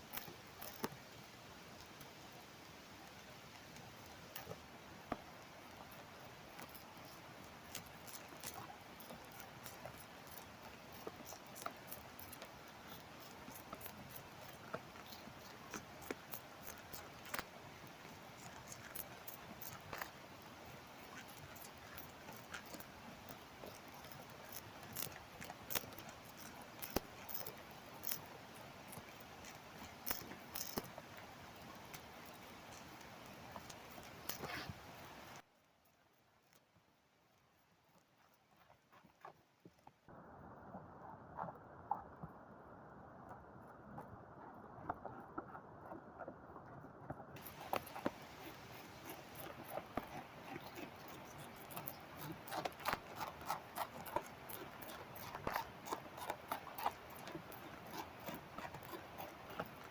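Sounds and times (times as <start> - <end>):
caterpillar chewing leaf clicks: 0.0 - 1.0, 5.9 - 20.2, 21.0 - 28.3, 28.9 - 31.0, 47.4 - 59.9.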